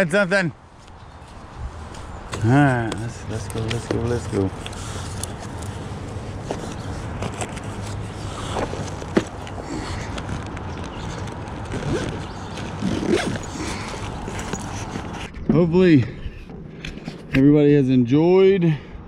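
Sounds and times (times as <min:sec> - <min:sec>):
gear rustling: 0:01.4 - 0:15.4
small clicks and scrapes: 0:01.9 - 0:15.5, 0:16.4 - 0:17.4.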